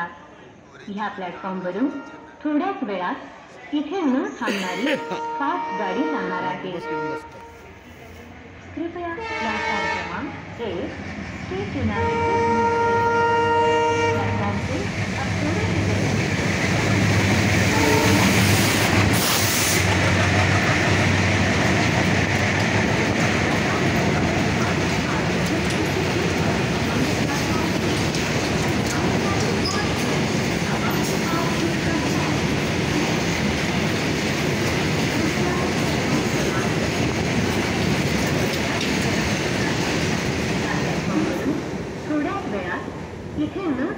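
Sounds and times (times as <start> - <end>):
locomotive horn: 1.9 - 2.4, 4.6 - 7.9, 9.2 - 10.3, 12.0 - 14.6, 17.6 - 19.0
train wheels on rails: 14.1 - 42.8.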